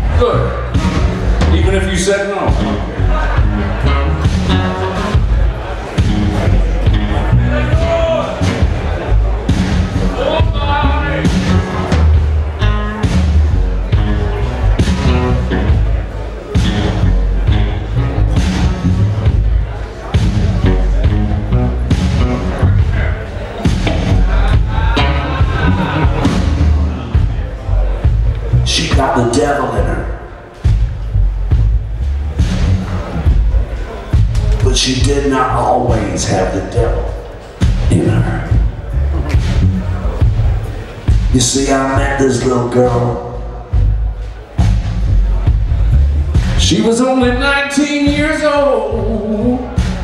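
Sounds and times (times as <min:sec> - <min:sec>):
live blues band: 0:00.0 - 0:50.0
blues harmonica bending notes: 0:10.9 - 0:19.6, 0:23.7 - 0:27.3
heavy low drum hits: 0:16.6 - 0:29.1, 0:30.6 - 0:34.9.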